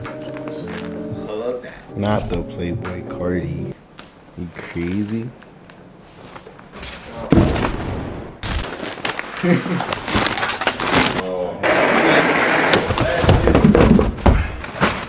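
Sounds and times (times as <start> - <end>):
clothes and plastic bag rustling: 8.6 - 11.2.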